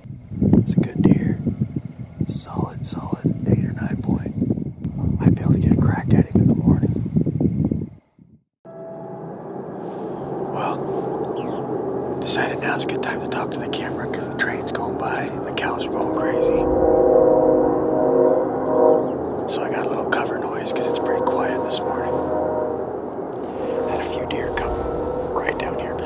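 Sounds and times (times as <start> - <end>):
man whispering: 2.3 - 4.3, 10.5 - 10.8, 12.2 - 16.7, 19.5 - 22.3, 23.5 - 26.0
droning musical tones: 8.7 - 26.0.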